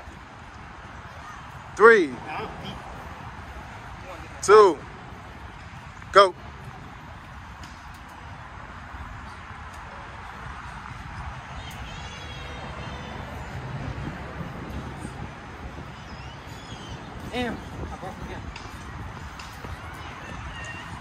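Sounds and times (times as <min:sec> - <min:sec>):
distant traffic: 0:00.0 - 0:21.0
wind rumble: 0:00.0 - 0:21.0.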